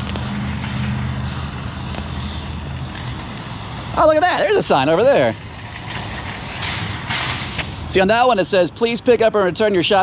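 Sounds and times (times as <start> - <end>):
outdoor noise: 0.0 - 10.0
vehicle engine humming: 0.0 - 10.0.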